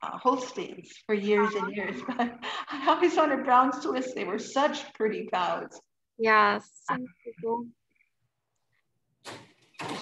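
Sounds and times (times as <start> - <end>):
woman speaking: 0.0 - 7.6.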